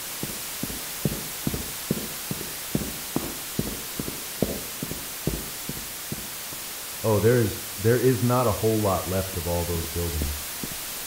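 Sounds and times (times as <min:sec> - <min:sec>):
soft footsteps: 0:00.0 - 0:07.0, 0:10.1 - 0:11.0
static hiss: 0:00.0 - 0:11.0.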